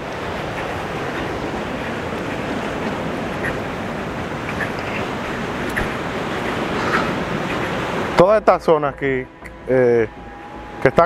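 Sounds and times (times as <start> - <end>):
sea surf washing on beach: 0.0 - 11.0
wind: 0.0 - 11.0.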